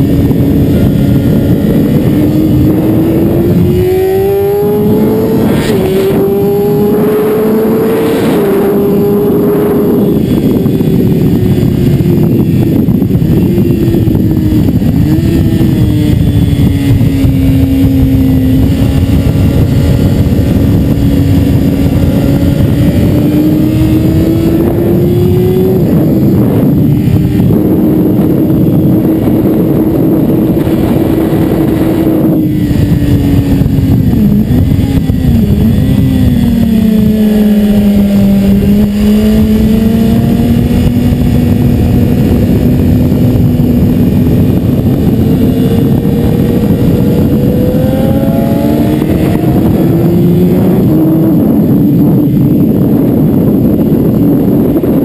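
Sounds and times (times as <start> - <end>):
motorcycle engine running hard: 0.0 - 55.0.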